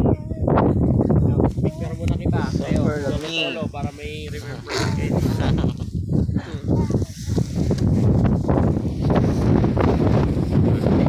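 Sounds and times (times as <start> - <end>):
people's voices: 0.0 - 7.8
wind buffeting microphone: 0.0 - 11.0.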